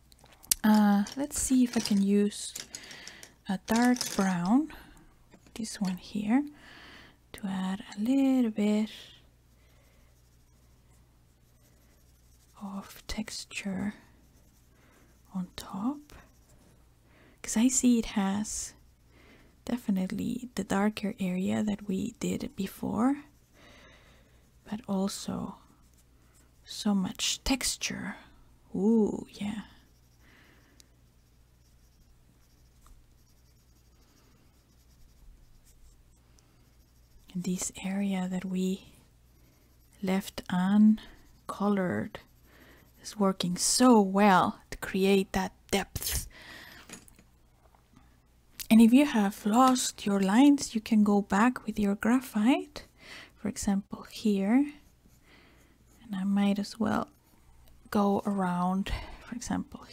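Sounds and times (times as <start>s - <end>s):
pencil scratching on paper: 7.8s - 16.7s, 19.7s - 27.9s, 29.4s - 44.7s, 54.0s - 58.4s.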